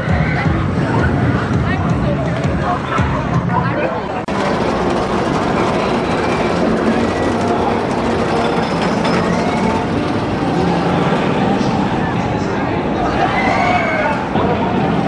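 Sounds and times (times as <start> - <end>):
faint voices: 0.0 - 15.0
roller coaster rumbling on track: 0.0 - 15.0.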